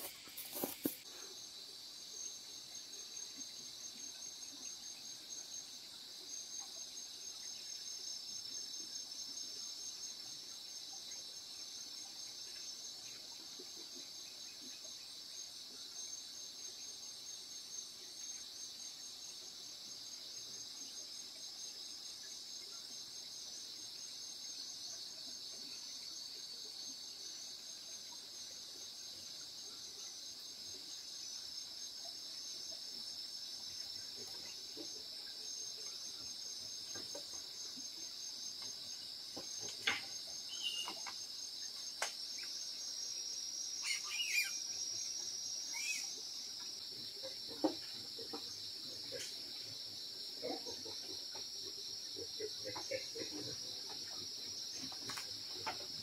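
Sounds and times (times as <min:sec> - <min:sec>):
crickets trilling: 0:00.0 - 0:56.0.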